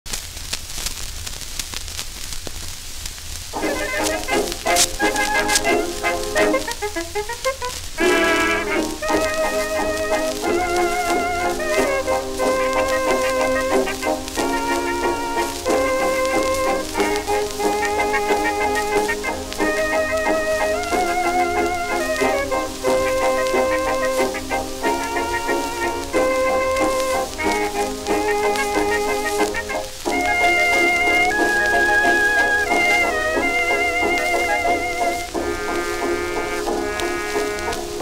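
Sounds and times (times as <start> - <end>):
record surface crackle: 0.0 - 38.0
dance band on old record: 0.1 - 38.0.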